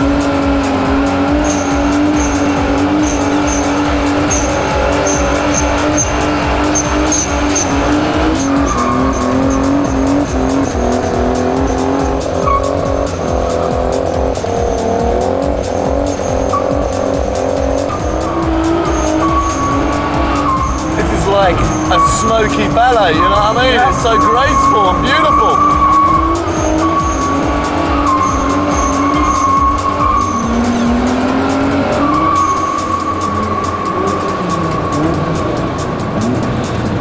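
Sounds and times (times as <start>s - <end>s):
car engine revving high: 0.0s - 37.0s
tyres squealing on concrete: 0.0s - 37.0s.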